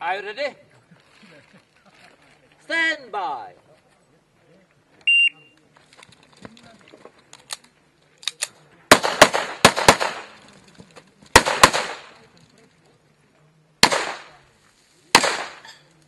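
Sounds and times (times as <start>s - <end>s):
pistol shots with echo: 8.9s - 10.4s, 11.3s - 12.2s, 13.8s - 14.4s, 15.1s - 15.8s.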